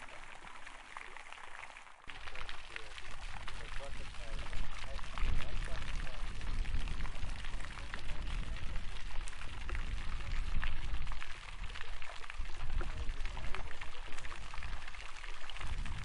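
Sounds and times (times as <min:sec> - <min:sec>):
fountain water splashing: 0:00.0 - 0:16.0
wind rumbling on microphone: 0:02.1 - 0:16.0.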